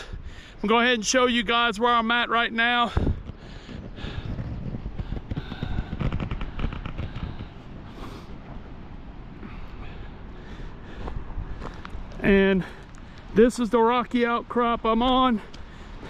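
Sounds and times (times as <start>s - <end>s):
wind buffeting the microphone: 2.8s - 13.5s.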